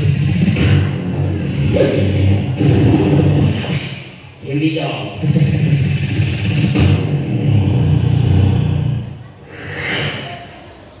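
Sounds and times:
sliding vocal sound: 0.0s - 4.2s, 5.2s - 10.7s
beatboxing bass rumble: 0.0s - 10.5s.

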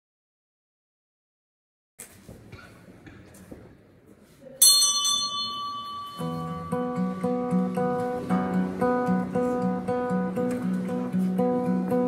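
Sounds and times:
bell-like chime ringing: 4.6s - 7.6s
acoustic guitar picking: 4.8s - 12.0s.

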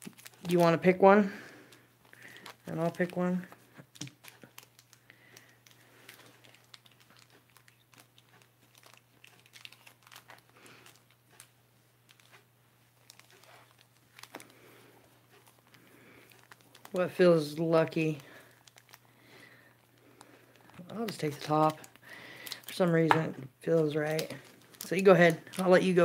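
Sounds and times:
foil wrappers crinkling: 0.0s - 26.0s.

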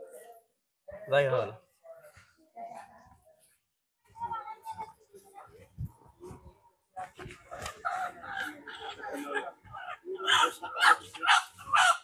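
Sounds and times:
people talking: 4.1s - 12.0s.

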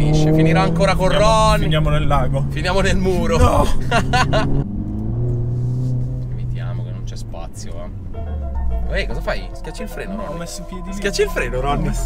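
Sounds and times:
car engine from inside cabin: 0.0s - 12.0s
music playing: 7.5s - 12.0s.

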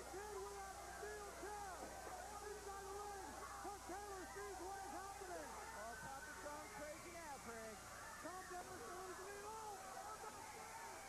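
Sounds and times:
crowd shouting and hooting: 0.0s - 11.0s.

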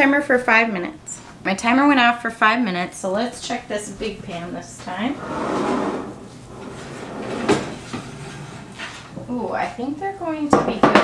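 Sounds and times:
baking pans rattling: 4.9s - 9.3s.

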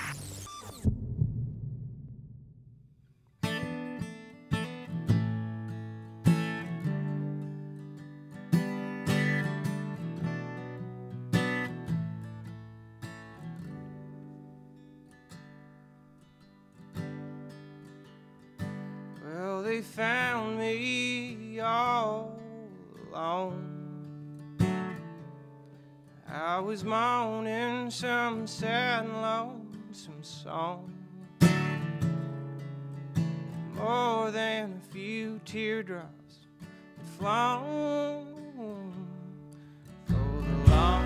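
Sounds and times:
acoustic guitar: 3.0s - 41.0s
person singing: 37.2s - 39.4s, 40.1s - 41.0s
upright bass: 40.1s - 41.0s.

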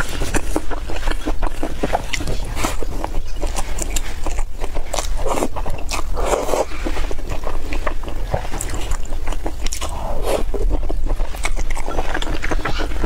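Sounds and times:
close chewing and mouth sounds: 0.0s - 13.0s.

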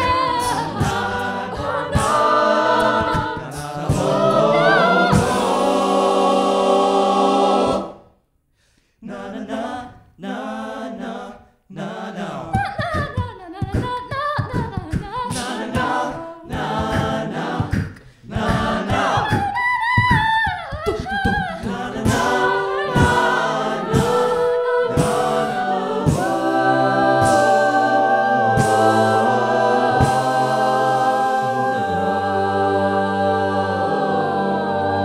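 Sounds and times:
vocal percussion beat: 0.0s - 8.0s, 11.8s - 35.0s
a cappella group singing: 0.0s - 8.1s, 9.0s - 35.0s.

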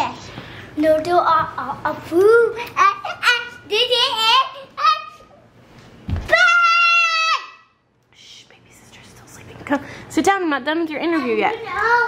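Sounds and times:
boy's high-pitched squeal: 6.3s - 7.8s.

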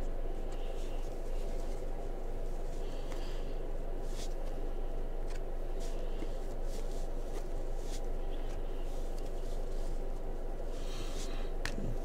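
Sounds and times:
low room hum: 0.0s - 12.0s
cards swishing against cards: 5.2s - 11.9s.

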